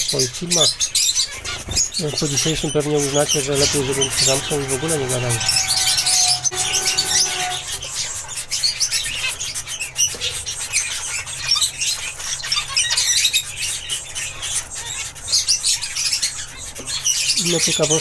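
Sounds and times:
finches chirping: 0.0 - 18.0.

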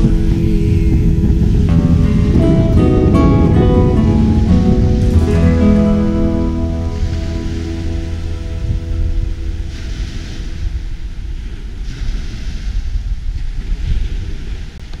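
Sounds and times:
background music: 0.0 - 11.0
sea waves washing ashore: 0.0 - 15.0
wind on microphone: 0.0 - 15.0.

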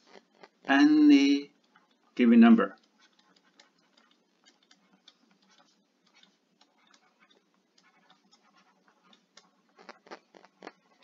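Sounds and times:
stylus tapping on tablet screen: 1.5 - 11.0.

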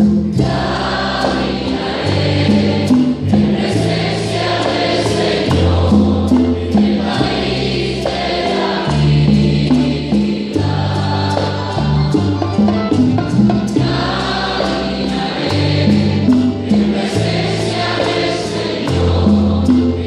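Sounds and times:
band playing: 0.0 - 20.0
voices singing a hymn: 0.0 - 20.0.

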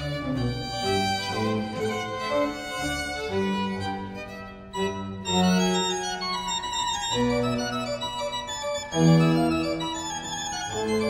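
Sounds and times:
pipe organ playing: 0.0 - 11.0.

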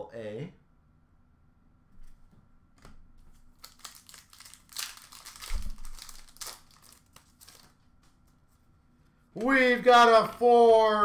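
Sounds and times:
foil wrapper crinkling and tearing: 3.4 - 8.1.

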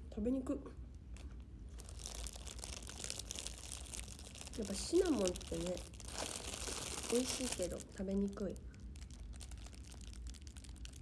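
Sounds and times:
plastic wrapper crinkling: 1.0 - 11.0.

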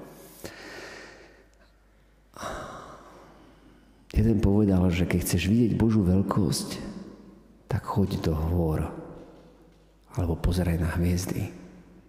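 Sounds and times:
echo of man's voice: 4.1 - 12.0.

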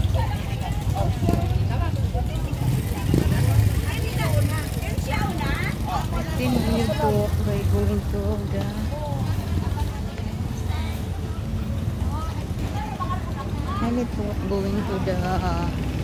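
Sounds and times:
indistinct voices talking: 0.0 - 16.0
motorcycle engine rumble: 0.0 - 16.0.

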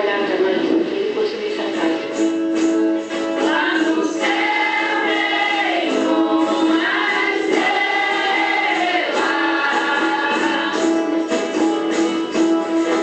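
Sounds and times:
voices singing in chorus: 3.4 - 11.5.

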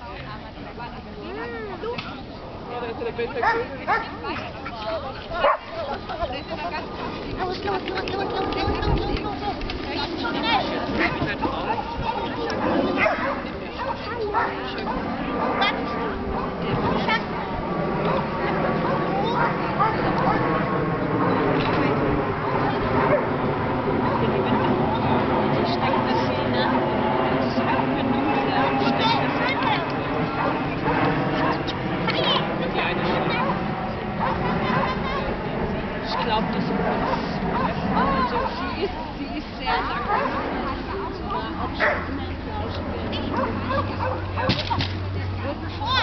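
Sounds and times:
murmur of people talking: 0.0 - 46.0
dog barking: 3.4 - 4.1, 5.4 - 5.7, 13.0 - 15.0, 19.3 - 20.4, 37.0 - 38.6, 40.0 - 41.0, 41.8 - 42.1, 43.3 - 44.7
dogs barking and yipping: 3.4 - 4.8, 5.4 - 8.8, 10.3 - 17.3, 18.8 - 20.6, 22.4 - 24.4, 33.3 - 35.3, 37.0 - 38.9, 39.7 - 42.2, 43.2 - 45.0.

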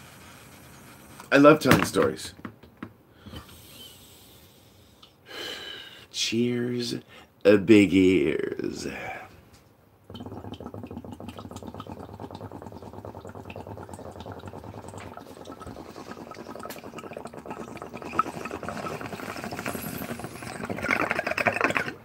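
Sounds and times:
water bubbling in a bong: 10.1 - 22.0.

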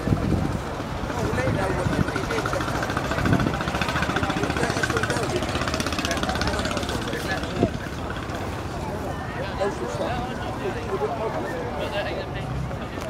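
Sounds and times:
people talking: 0.0 - 13.0
engine idling: 1.3 - 8.8.

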